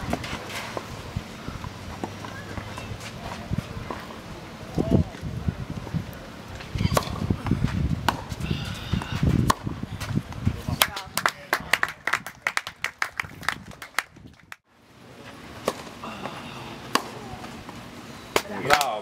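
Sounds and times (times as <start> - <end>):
tennis ball bouncing: 6.8 - 8.4, 9.2 - 10.2, 16.9 - 17.2
tennis racket hitting ball: 9.2 - 10.1.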